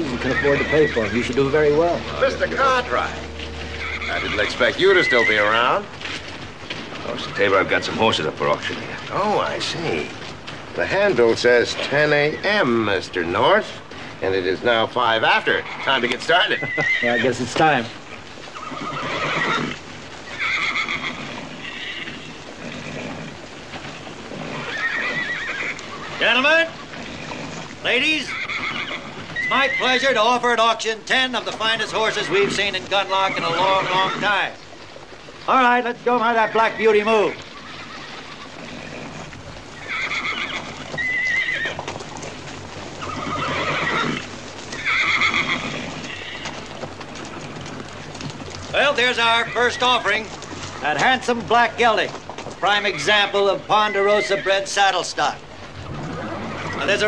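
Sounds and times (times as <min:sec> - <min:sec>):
hoofbeats on dirt: 0:00.0 - 0:57.0
horses whinnying: 0:00.0 - 0:57.0.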